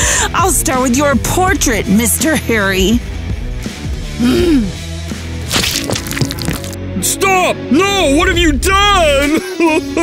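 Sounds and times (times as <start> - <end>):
background music: 0.0 - 10.0
sharp cracking sounds: 5.5 - 6.8.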